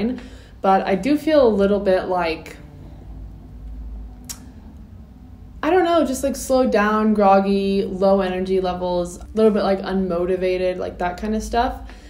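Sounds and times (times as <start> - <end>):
low room hum: 0.0 - 12.0
short click: 4.2 - 4.5.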